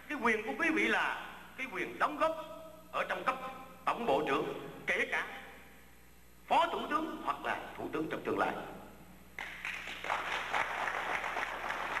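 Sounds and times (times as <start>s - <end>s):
audience applauding: 9.4s - 12.0s.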